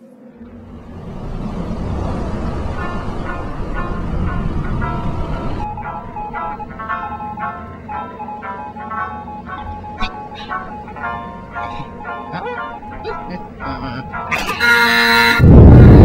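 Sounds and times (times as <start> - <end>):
engine and sea rumble: 0.2 - 16.0.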